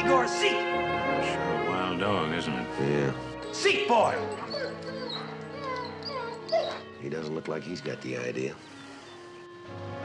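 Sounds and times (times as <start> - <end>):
background music: 0.0 - 10.0
dog whimpering: 3.9 - 7.0.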